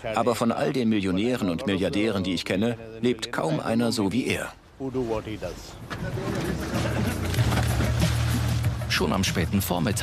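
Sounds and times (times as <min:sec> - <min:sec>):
boat engine droning: 0:05.8 - 0:09.0
man's voice: 0:08.8 - 0:10.0.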